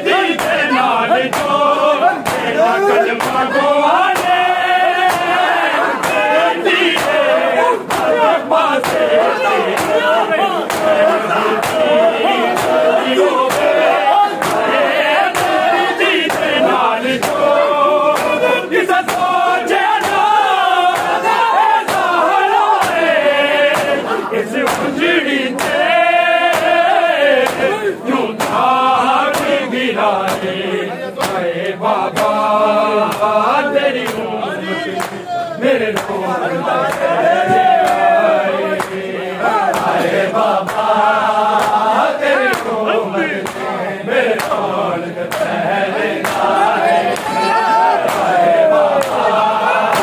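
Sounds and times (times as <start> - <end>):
men chanting in unison: 0.0 - 50.0
hands slapping bare chests: 0.3 - 24.0, 24.6 - 27.8, 28.4 - 29.6, 30.2 - 30.6, 31.2 - 32.5, 33.1 - 33.4, 34.0 - 34.3, 35.0 - 35.2, 35.9 - 36.2, 36.8 - 38.2, 38.8 - 39.0, 39.7 - 42.8, 43.4 - 43.7, 44.4 - 44.6, 45.3 - 45.6, 46.2 - 47.4, 48.0 - 49.2.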